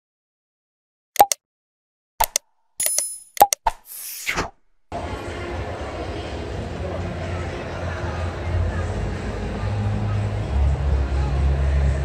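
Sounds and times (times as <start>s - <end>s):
mouse clicks: 1.2s - 1.4s, 2.2s - 3.8s
noisy swish falling in pitch: 3.8s - 4.6s
steady street noise: 4.9s - 12.0s.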